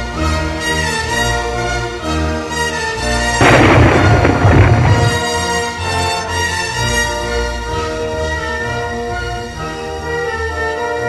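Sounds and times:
orchestral music with sustained notes: 0:00.0 - 0:11.0
loud crash with deep rumble: 0:03.4 - 0:05.8.

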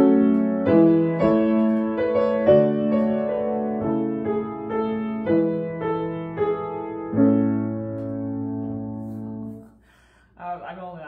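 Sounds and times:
woman's voice: 0:10.4 - 0:11.0.

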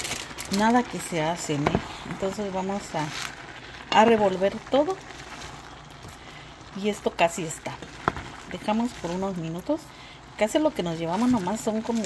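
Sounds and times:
vegetables hissing in a pan: 0:00.0 - 0:12.0.

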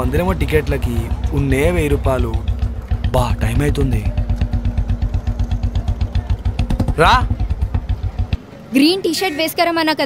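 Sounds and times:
motorcycle engine idling: 0:00.0 - 0:08.7.

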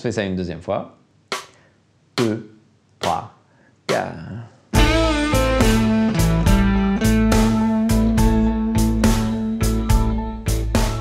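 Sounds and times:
electric guitar blues lick: 0:04.8 - 0:10.5
shuffle backing track with drums: 0:04.8 - 0:11.0.

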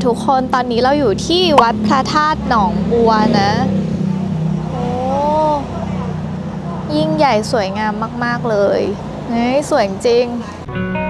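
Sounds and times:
woman's wavering wordless vocal: 0:04.6 - 0:05.7.

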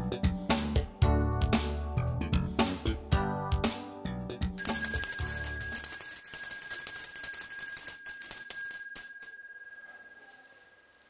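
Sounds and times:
alarm clock bell ringing: 0:04.6 - 0:11.0.

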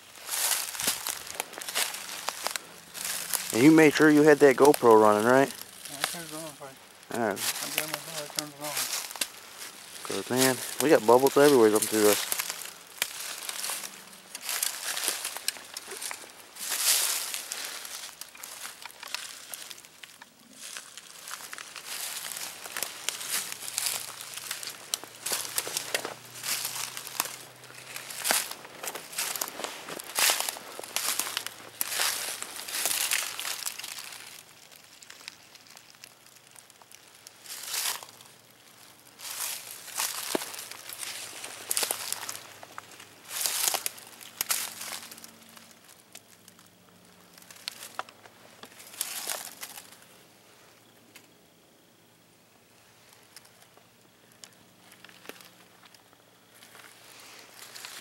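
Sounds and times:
footsteps crunching dry leaves: 0:00.0 - 0:50.2, 0:52.9 - 0:58.0.

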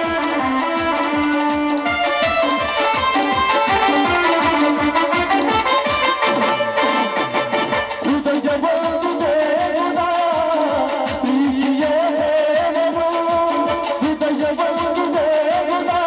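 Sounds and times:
keyboard melody: 0:00.0 - 0:16.0
tabla and drum pad beat: 0:00.0 - 0:16.0.

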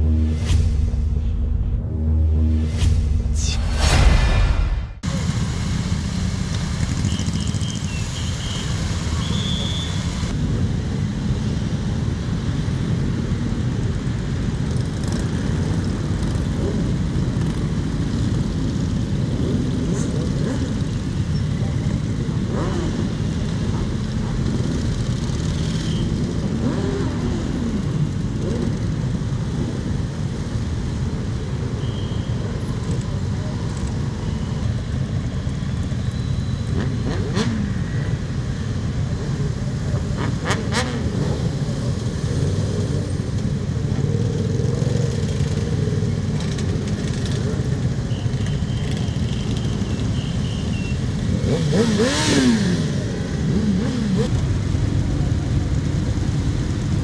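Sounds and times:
motorcycle engines rumbling: 0:05.0 - 0:57.0
motorcycle engine revving: 0:21.8 - 0:28.9, 0:51.2 - 0:55.0.

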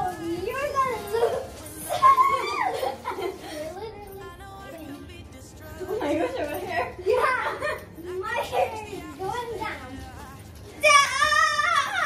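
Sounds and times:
girls calling out and chattering: 0:00.0 - 0:05.2, 0:05.8 - 0:12.0.

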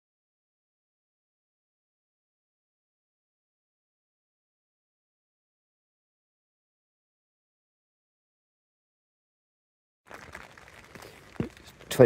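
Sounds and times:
rain pattering on a tent: 0:10.1 - 0:12.0.

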